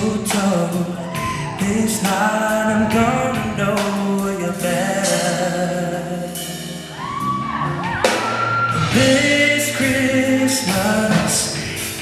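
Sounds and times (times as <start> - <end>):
live band playing: 0.0 - 12.0
high whoops: 0.9 - 1.6, 6.9 - 9.0.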